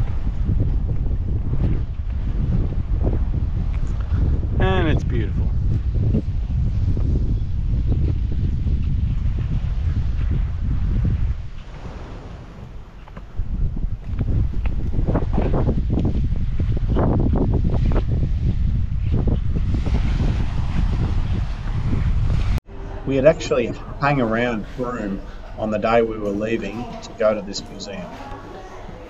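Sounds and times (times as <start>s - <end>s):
wind buffeting microphone: 0.0s - 29.0s
small waves washing onto shore: 11.4s - 13.4s.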